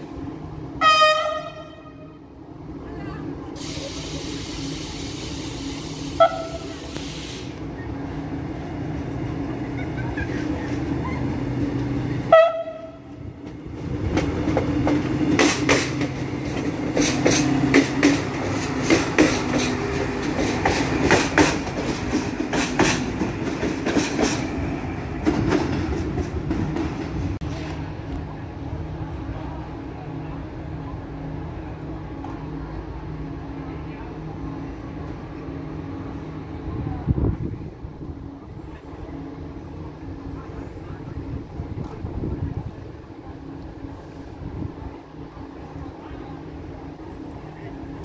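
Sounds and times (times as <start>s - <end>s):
train horn toots: 0.8s - 2.3s, 6.1s - 6.8s, 12.3s - 13.2s
train wheels clacking over rail joints: 13.4s - 24.6s.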